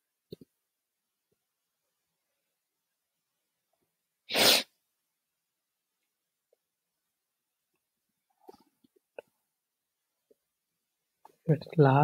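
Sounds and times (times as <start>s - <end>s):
person sneezing: 4.3s - 4.8s.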